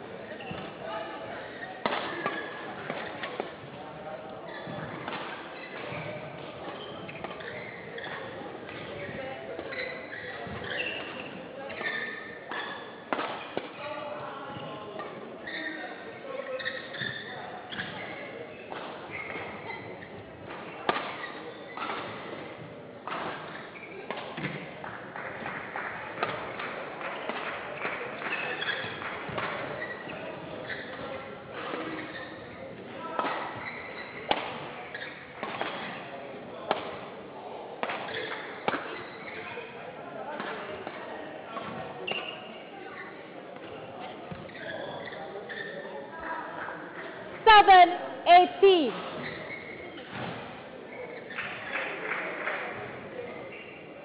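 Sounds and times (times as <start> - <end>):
murmur of voices: 0.0 - 54.0
rackets striking shuttlecock: 37.8 - 39.1.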